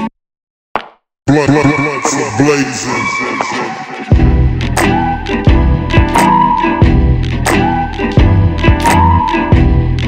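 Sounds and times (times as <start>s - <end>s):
hip-hop instrumental beat: 1.3s - 10.0s.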